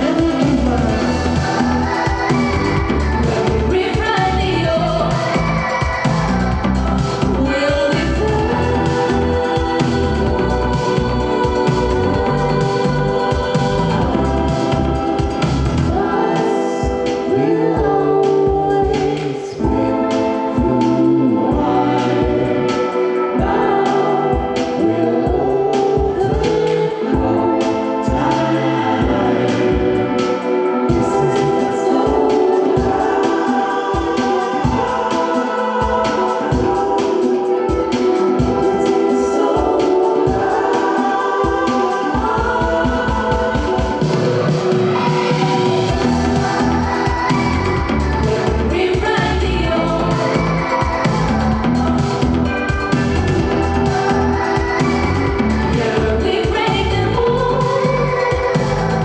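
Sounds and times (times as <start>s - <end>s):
deep bass line: 0.0s - 16.0s, 45.9s - 59.0s
person singing: 0.0s - 59.0s
synthesizer chords: 0.0s - 59.0s.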